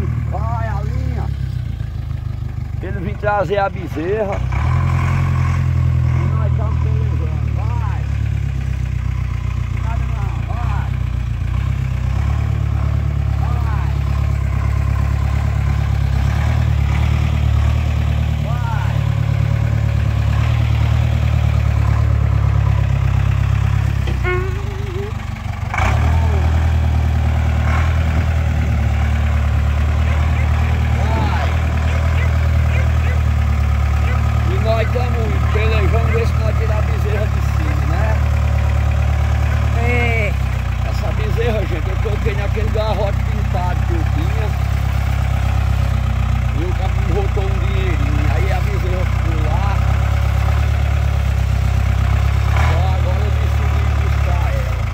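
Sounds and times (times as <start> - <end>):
truck engine idling: 0.0 - 54.9.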